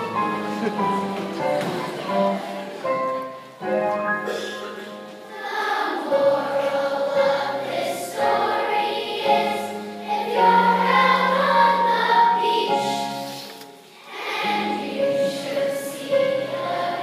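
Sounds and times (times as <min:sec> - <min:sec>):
children's choir singing: 0:00.0 - 0:03.7, 0:04.3 - 0:17.0.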